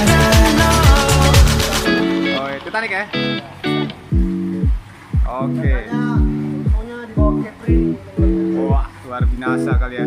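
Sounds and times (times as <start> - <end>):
deep drum beat: 0.0 - 2.2, 4.1 - 10.0
repeated pitched notes: 0.0 - 10.0.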